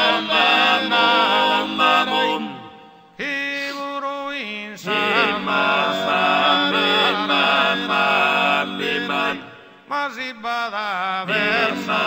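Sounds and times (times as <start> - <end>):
male vocal group singing in harmony: 0.0 - 12.0.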